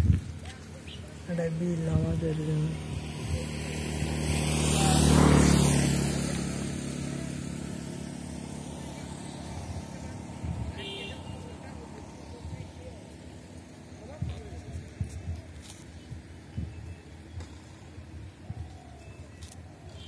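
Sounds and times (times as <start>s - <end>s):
vehicle driving past: 2.3s - 14.0s.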